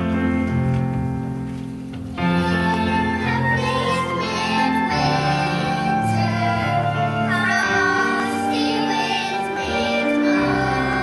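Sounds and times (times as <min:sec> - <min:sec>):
musical accompaniment: 0:00.0 - 0:11.0
children singing together: 0:02.3 - 0:11.0.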